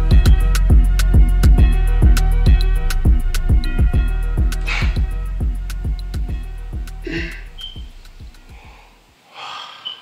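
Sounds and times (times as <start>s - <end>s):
person gasping: 7.0s - 7.6s, 8.5s - 10.0s
short high chirp: 7.6s - 7.8s.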